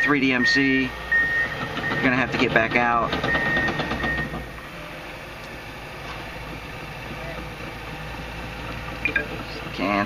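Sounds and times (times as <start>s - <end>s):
diesel engine idling: 0.0s - 10.0s
high electronic beep: 9.0s - 9.3s.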